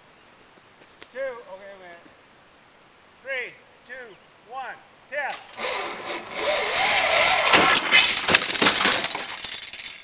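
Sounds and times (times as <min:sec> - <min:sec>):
person calling out: 0:03.2 - 0:05.5.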